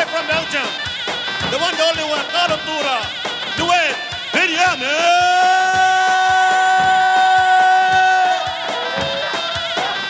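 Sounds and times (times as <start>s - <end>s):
even drum beat: 0.0s - 10.0s.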